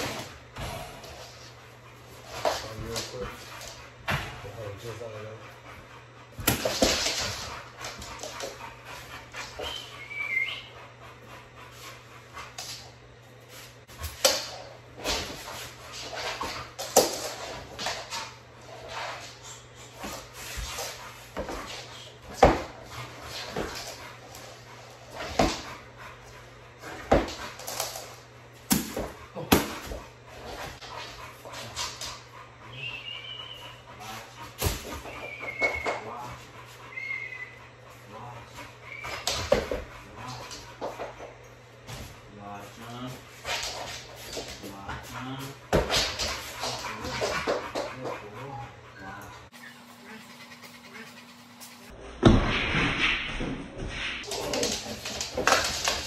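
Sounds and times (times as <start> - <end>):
dog whining: 9.6 - 10.8, 32.6 - 34.1, 34.9 - 37.8, 38.8 - 39.6, 49.5 - 51.9.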